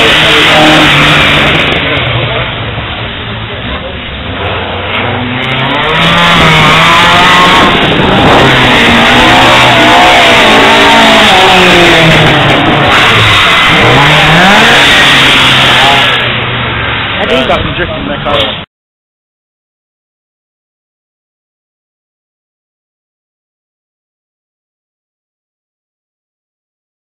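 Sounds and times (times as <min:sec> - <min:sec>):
car engine revving hard: 0:00.0 - 0:02.6, 0:04.2 - 0:17.6.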